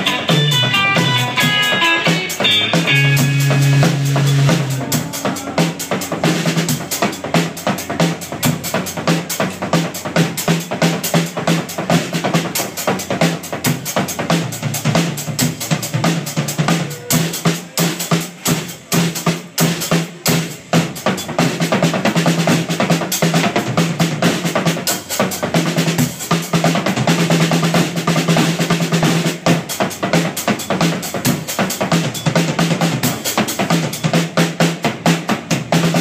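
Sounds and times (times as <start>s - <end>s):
drum kit fast beat: 0.0s - 36.0s
live rock band playing: 0.0s - 36.0s.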